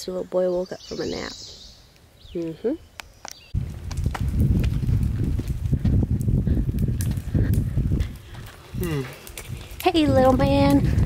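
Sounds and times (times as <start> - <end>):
footsteps on asphalt: 3.1 - 11.0
pushchair wheels rolling on asphalt: 3.6 - 11.0.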